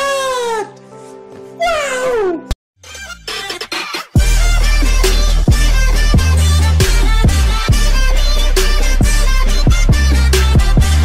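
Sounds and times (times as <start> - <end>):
background music with held notes: 0.0 - 11.0.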